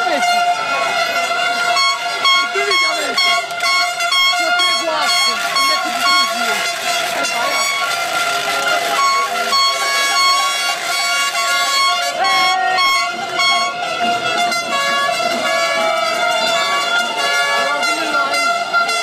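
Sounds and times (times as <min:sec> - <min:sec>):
car horns honking: 0:00.0 - 0:19.0
crowd shouting: 0:00.0 - 0:19.0.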